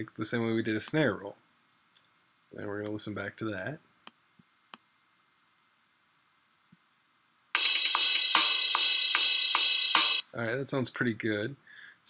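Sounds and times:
programmed drum pattern: 7.6s - 10.2s.

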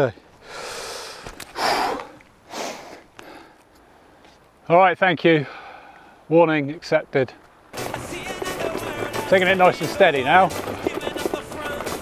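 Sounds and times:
man breathing hard: 0.4s - 4.3s, 5.4s - 6.3s.

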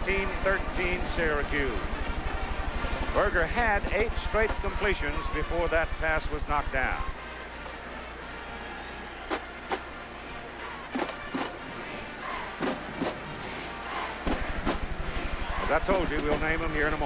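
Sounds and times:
music in the background: 0.0s - 17.0s
stadium crowd noise: 0.0s - 17.0s.

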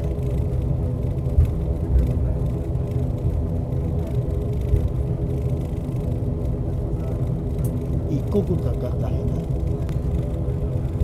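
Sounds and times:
turboprop engines droning: 0.0s - 11.0s.

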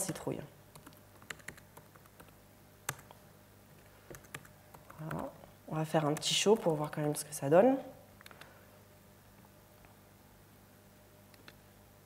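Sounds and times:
typing on computer keyboard: 0.8s - 3.1s, 4.1s - 5.2s.

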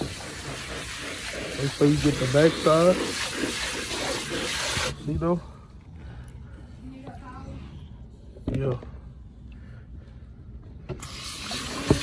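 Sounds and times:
water spray rinsing dog: 0.0s - 5.0s, 11.0s - 12.0s.

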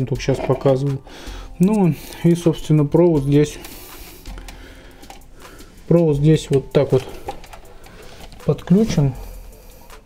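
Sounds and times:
man speaking: 1.6s - 3.7s, 5.9s - 7.2s, 8.4s - 9.2s.

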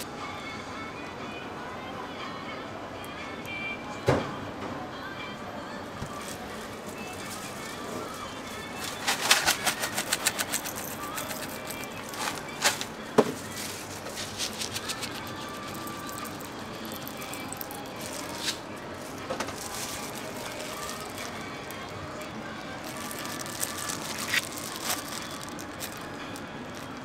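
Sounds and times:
steady background noise: 0.0s - 27.0s.

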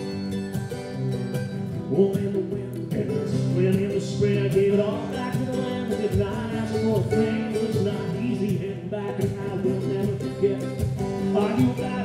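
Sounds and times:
acoustic guitar strumming: 0.0s - 12.0s
mandolin picking a melody: 0.0s - 12.0s.

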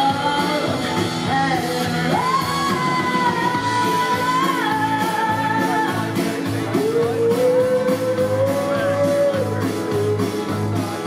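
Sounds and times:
live band playing country-pop: 0.0s - 11.0s
woman singing: 0.0s - 11.0s.

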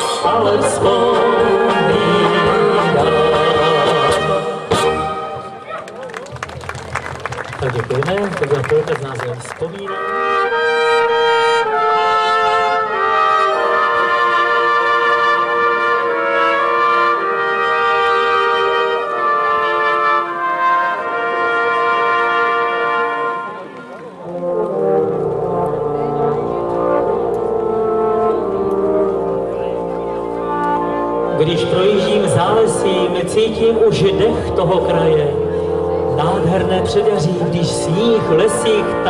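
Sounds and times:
lower brass playing tune: 0.0s - 5.7s, 9.7s - 39.0s
trumpets playing held notes: 0.0s - 5.7s, 9.7s - 39.0s
brass band playing: 0.0s - 5.9s, 8.2s - 39.0s.

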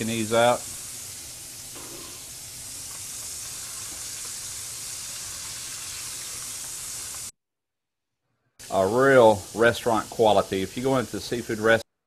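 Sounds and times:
oysters deep-frying in oil: 0.0s - 7.3s, 8.6s - 11.8s.

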